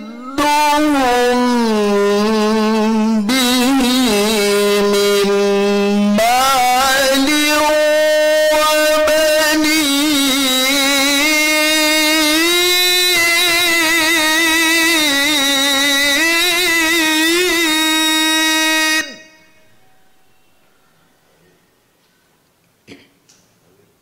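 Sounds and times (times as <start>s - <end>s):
man reciting melodically: 0.0s - 19.9s.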